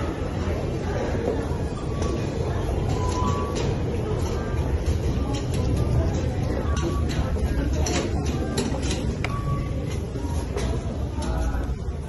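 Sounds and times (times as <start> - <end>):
low rumble of subway station: 0.0 - 12.0.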